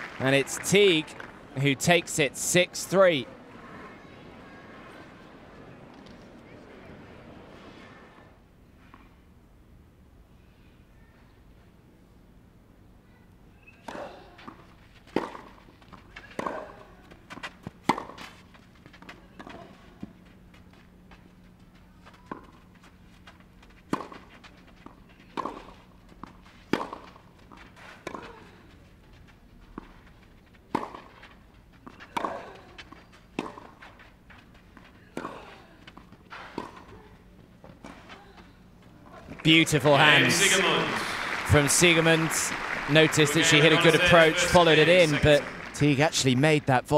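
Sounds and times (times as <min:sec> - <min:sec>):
tennis ball bouncing: 0:13.6 - 0:20.7, 0:21.4 - 0:28.6, 0:29.7 - 0:38.2
racket striking tennis ball: 0:13.8 - 0:15.6, 0:16.2 - 0:16.8, 0:17.4 - 0:18.3, 0:23.9 - 0:27.2, 0:28.0 - 0:28.4, 0:30.7 - 0:31.2, 0:32.0 - 0:33.8, 0:35.1 - 0:36.9.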